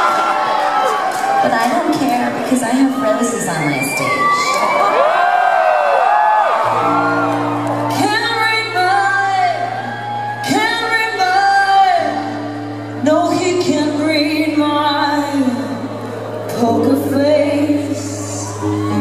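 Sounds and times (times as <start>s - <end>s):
crowd whooping: 0.0s - 1.6s, 2.8s - 11.6s, 17.6s - 19.0s
woman singing wordless notes: 16.5s - 19.0s.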